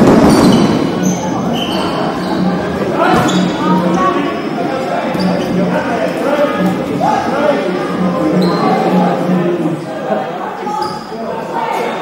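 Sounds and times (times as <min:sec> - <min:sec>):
high squeaks: 0:00.0 - 0:05.8, 0:06.5 - 0:09.3.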